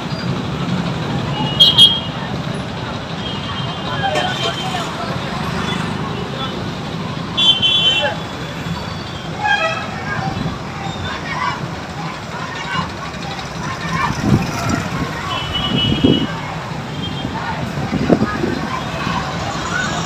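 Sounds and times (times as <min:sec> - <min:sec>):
marching crowd: 0:00.0 - 0:20.0
scattered voices: 0:00.0 - 0:20.0
traffic: 0:00.0 - 0:20.0.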